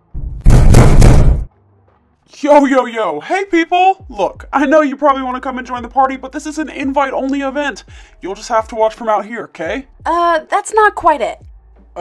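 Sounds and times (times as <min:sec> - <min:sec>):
loud banging on door: 0:00.0 - 0:01.5.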